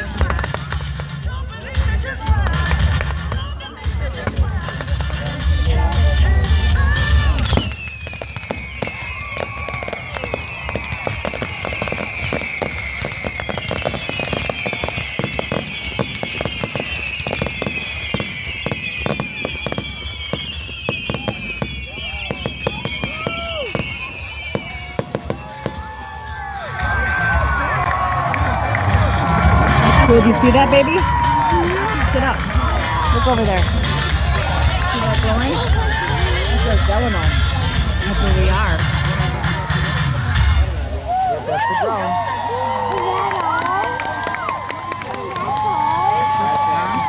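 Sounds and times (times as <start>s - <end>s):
firework bangs: 0.0s - 40.8s
fireworks crackling and popping: 0.0s - 41.1s
descending firework whistles: 6.8s - 28.0s.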